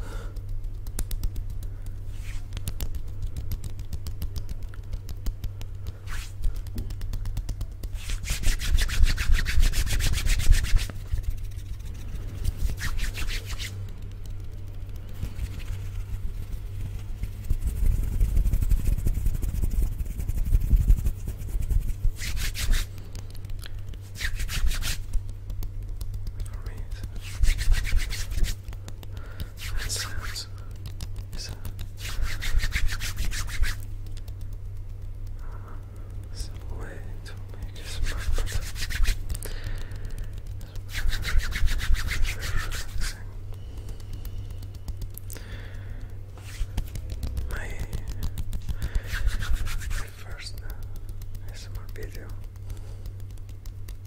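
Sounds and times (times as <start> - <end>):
hands rubbing together: 0.0 - 54.0
muffled rumble on microphone: 1.2 - 54.0.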